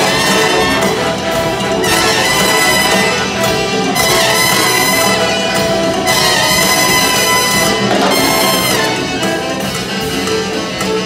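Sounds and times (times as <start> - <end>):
brass section: 0.0 - 11.0
jazz big band playing: 0.0 - 11.0.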